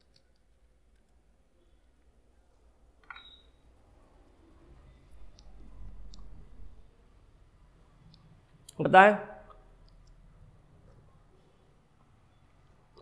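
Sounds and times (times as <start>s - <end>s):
man's voice: 8.8s - 9.4s.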